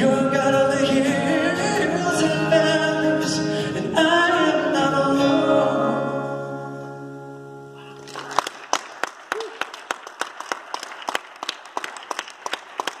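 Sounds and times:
acoustic guitar chord ringing: 0.0s - 8.0s
audience clapping: 8.0s - 13.0s.

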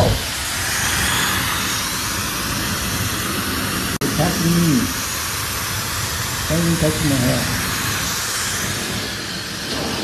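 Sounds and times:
hair dryer blowing: 0.0s - 10.0s.

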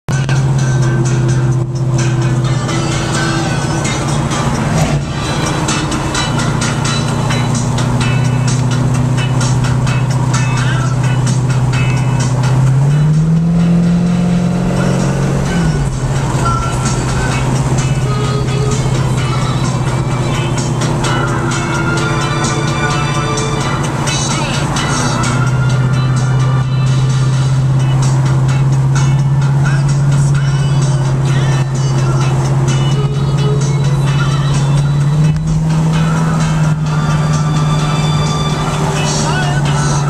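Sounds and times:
car engine cruising: 0.1s - 40.0s.

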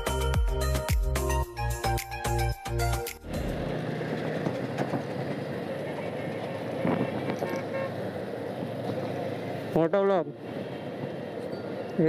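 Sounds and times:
motorcycle wind and road noise: 3.4s - 12.0s
faint vehicle horn: 6.0s - 8.0s.

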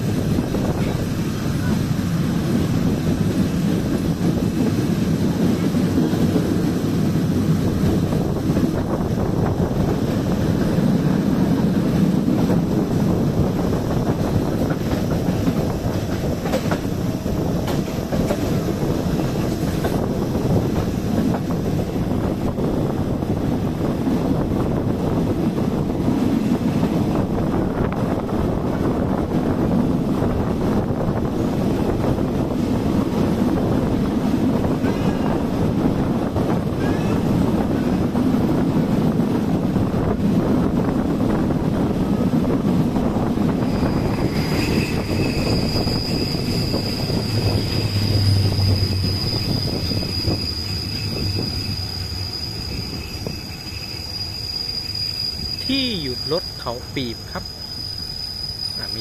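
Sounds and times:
rushing air: 0.0s - 59.0s
train wheels rumbling on rail: 0.0s - 59.0s.

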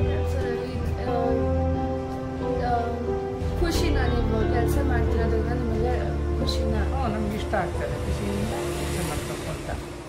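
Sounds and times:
woman speaking: 0.0s - 1.7s, 2.6s - 10.0s
soft background music: 0.0s - 10.0s.

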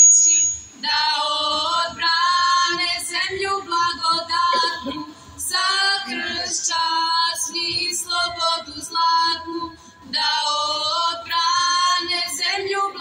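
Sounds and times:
women singing in harmony: 0.8s - 13.0s.

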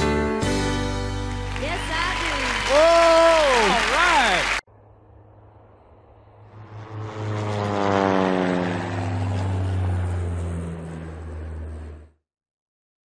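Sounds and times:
engine passing by whining: 4.7s - 12.2s.

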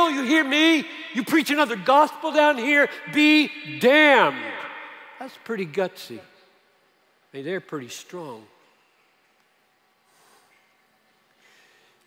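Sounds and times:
soft breath: 11.3s - 12.0s.

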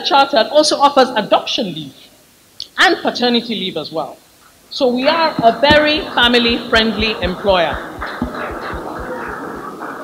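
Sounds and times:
low murmur in a hall: 0.0s - 10.0s
dull low thuds: 5.4s - 9.5s.

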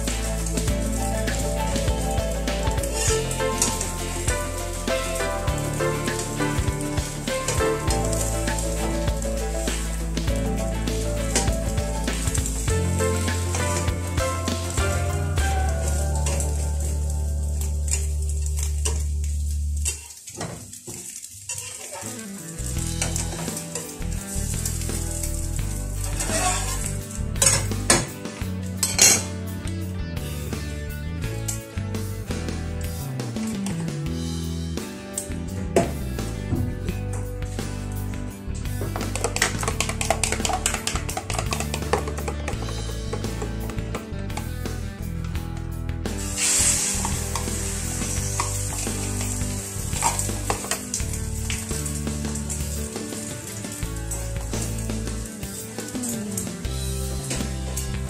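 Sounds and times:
food sizzling in a pan: 0.0s - 29.4s, 46.1s - 58.0s.

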